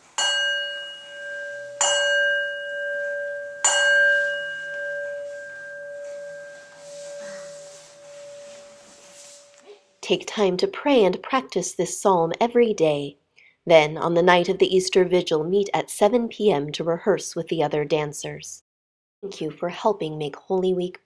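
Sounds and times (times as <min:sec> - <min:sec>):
bell ringing: 0:00.0 - 0:09.7.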